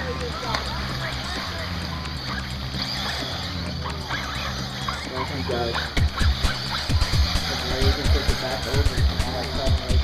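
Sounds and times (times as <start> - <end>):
faint voices: 0.0 - 10.0
radio-controlled buggies racing: 0.0 - 10.0.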